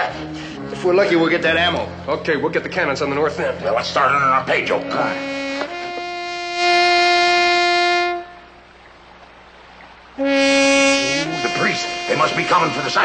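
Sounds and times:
horn blowing long calls: 2.9 - 9.1, 10.1 - 13.0.

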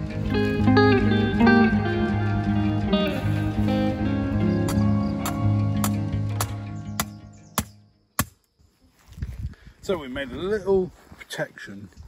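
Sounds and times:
acoustic guitar music: 0.0 - 7.6.

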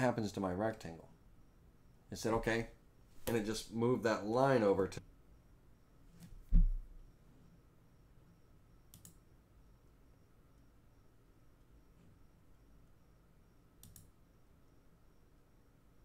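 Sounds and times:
faint short clicks: 13.8 - 14.1.

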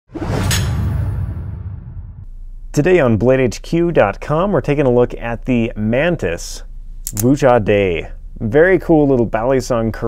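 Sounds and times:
sharp hit: 0.1 - 2.3
whoosh: 0.1 - 2.3
low rumble: 0.2 - 3.0.

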